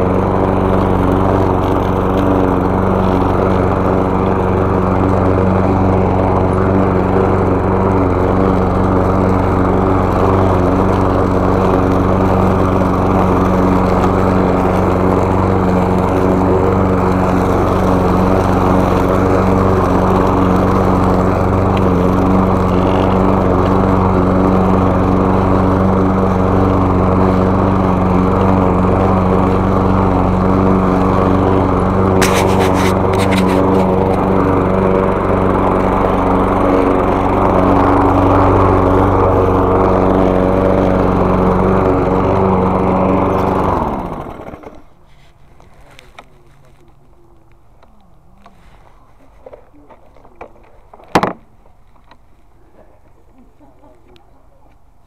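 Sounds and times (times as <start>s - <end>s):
lawn mower engine running: 0.0s - 54.0s.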